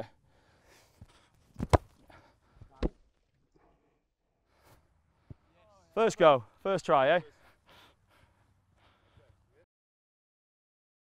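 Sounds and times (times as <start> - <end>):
boot kicking ball thud: 1.6 - 2.0.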